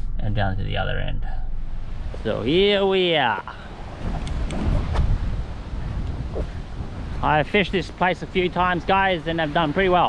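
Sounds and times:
wind buffeting microphone: 1.2 - 10.0.

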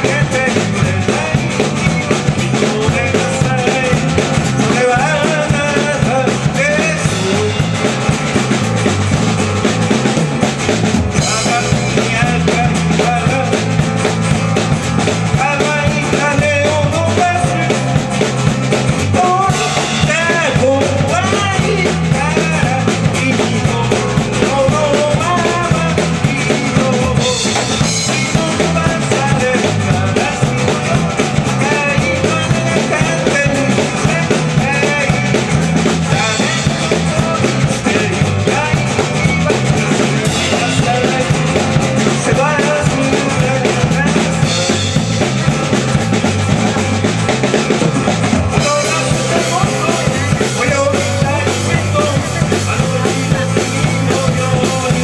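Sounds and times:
acoustic guitar: 0.0 - 55.0
drum kit: 0.0 - 55.0
electric bass: 0.0 - 55.0.

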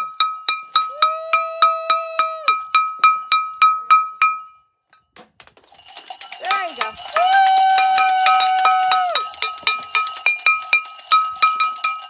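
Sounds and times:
small bell ringing rapidly: 5.6 - 12.0.

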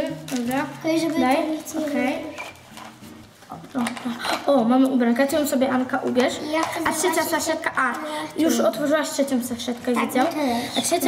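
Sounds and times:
girls speaking: 0.0 - 2.6, 3.5 - 11.0
plastic packaging rustling: 0.0 - 11.0.

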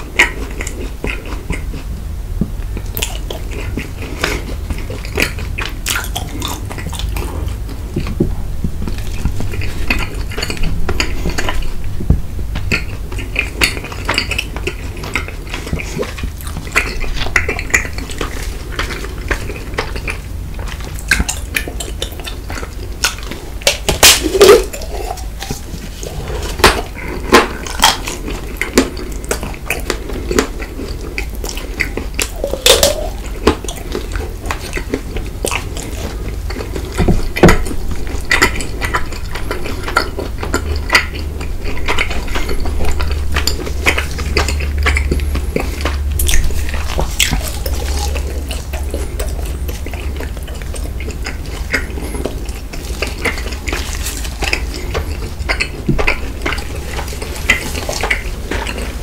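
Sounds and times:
chewing and mouth sounds: 0.0 - 59.0.

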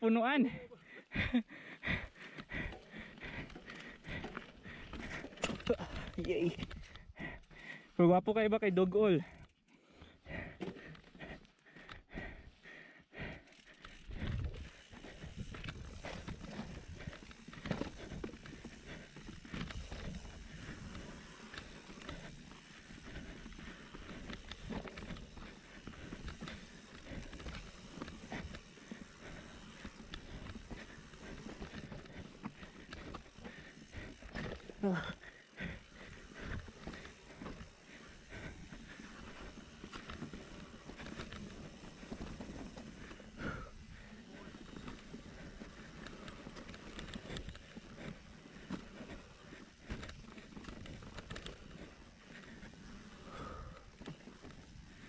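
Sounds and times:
bike tyres rolling over dirt and rocks: 0.7 - 7.9, 8.8 - 55.0
bike knocking and rattling: 1.2 - 7.7, 9.9 - 55.0.

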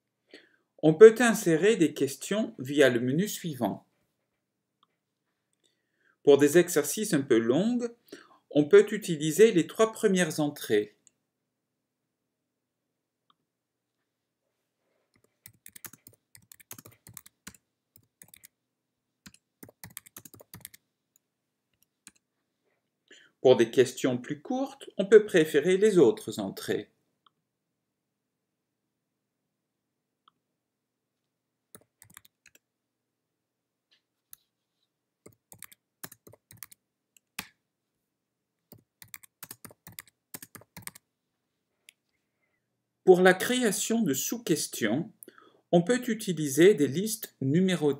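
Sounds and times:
typing on computer keyboard: 15.2 - 18.6, 19.2 - 20.8, 31.7 - 32.6, 35.3 - 37.5, 38.7 - 41.0.

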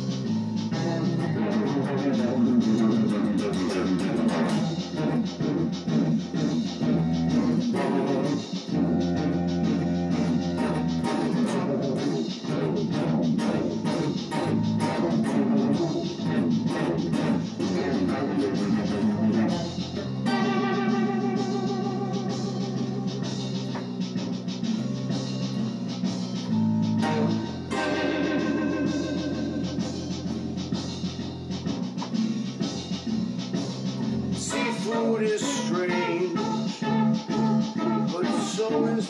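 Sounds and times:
sustained low notes: 0.0 - 24.8, 26.4 - 33.2
electric guitar rock jam: 0.0 - 39.0.

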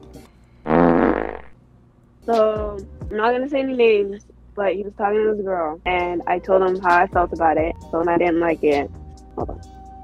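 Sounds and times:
buzzy fart sound: 0.7 - 1.6.

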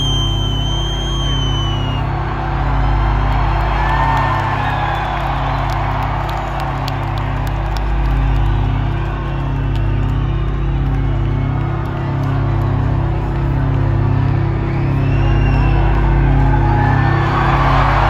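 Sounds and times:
high falling whistle: 0.0 - 2.1
crowd cheering and whooping: 0.0 - 18.0.

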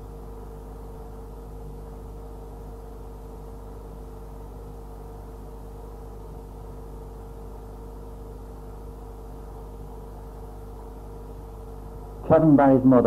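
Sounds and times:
steady electrical hum: 0.0 - 13.0.

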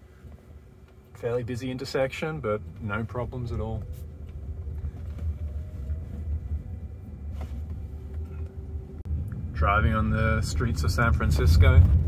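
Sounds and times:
faint steady hum: 0.0 - 12.0
road rumble inside car: 0.0 - 12.0.

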